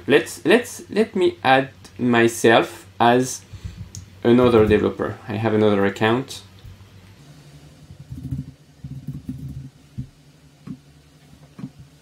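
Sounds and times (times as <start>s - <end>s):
keyboard typing thuds: 8.0s - 10.8s.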